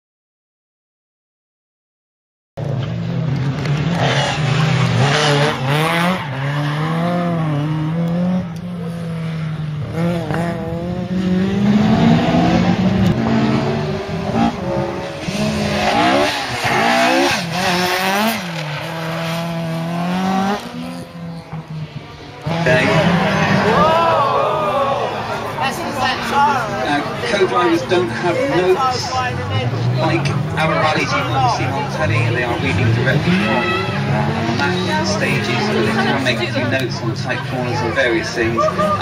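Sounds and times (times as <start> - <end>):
rally car engine revving: 2.6 - 39.0.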